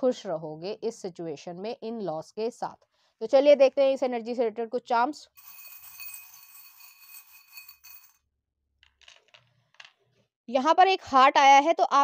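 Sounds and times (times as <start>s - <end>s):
metal charms jingling against glass: 5.4s - 8.2s.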